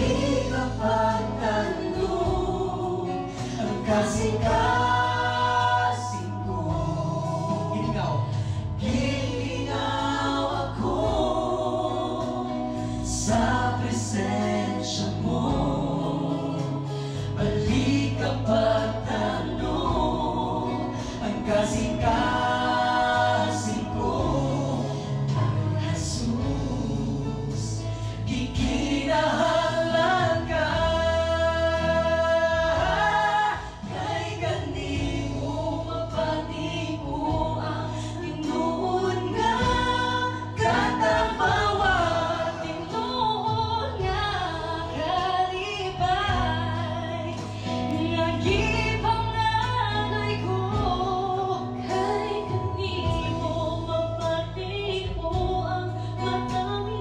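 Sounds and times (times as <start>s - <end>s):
group singing in harmony: 0.0s - 57.0s
sustained keyboard chords: 0.0s - 57.0s.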